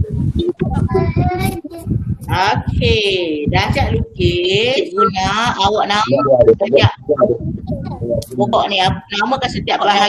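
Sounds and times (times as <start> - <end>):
child's sing-song voice: 0.0 - 2.9
steady low rumble: 0.0 - 10.0.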